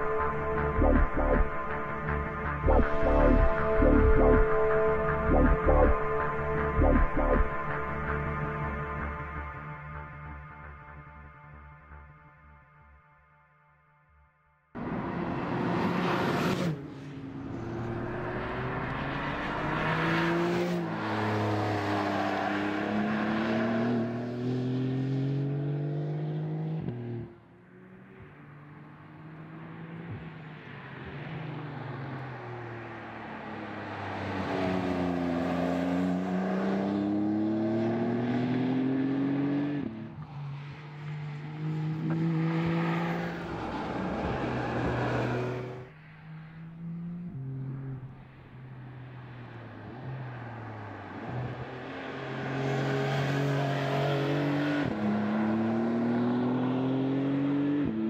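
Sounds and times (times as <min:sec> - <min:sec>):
car engine accelerating hard: 0:00.0 - 0:08.7, 0:14.8 - 0:58.0.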